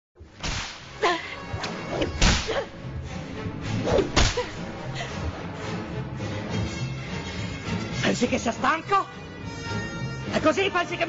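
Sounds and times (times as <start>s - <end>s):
film music: 0.2s - 11.0s
sharp whip-like cracks: 0.4s - 1.0s, 1.9s - 2.7s, 3.7s - 4.6s.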